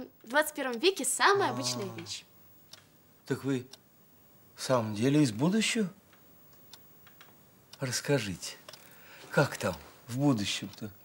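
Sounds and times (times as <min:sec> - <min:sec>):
man talking: 0:09.3 - 0:11.0.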